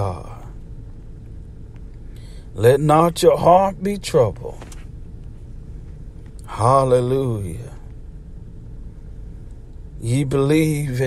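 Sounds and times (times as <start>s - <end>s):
faint steady hum: 0.0s - 11.0s
low background rumble: 0.0s - 11.0s.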